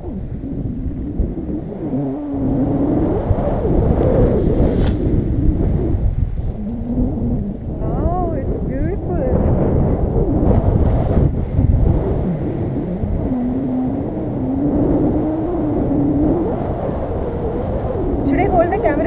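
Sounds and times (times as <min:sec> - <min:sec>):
wind buffeting microphone: 0:00.0 - 0:19.0
person's voice: 0:07.8 - 0:09.4, 0:18.3 - 0:19.0.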